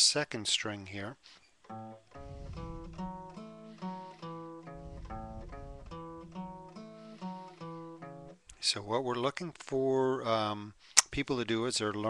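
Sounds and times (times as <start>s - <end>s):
acoustic guitar bass notes: 1.7s - 8.6s.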